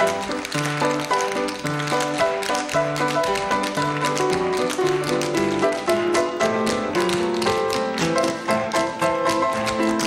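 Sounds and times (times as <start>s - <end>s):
live piano music: 0.0s - 10.0s
tap shoes clicking: 0.0s - 10.0s.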